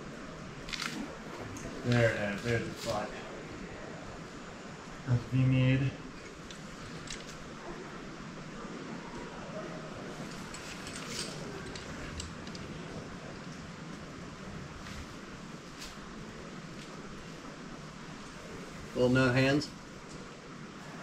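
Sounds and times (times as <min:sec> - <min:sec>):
low outdoor background noise: 0:00.0 - 0:21.0.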